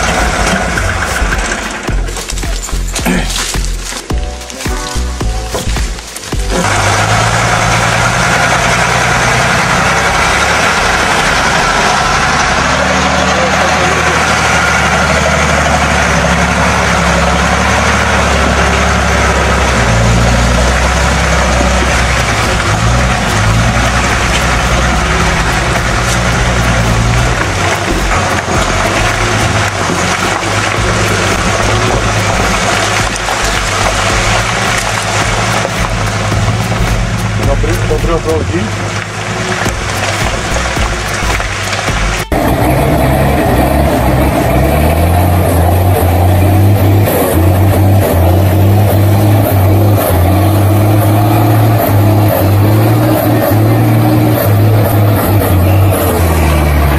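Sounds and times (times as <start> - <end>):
truck engine running hard: 0.0 - 56.9
wheels churning through mud: 0.0 - 56.9.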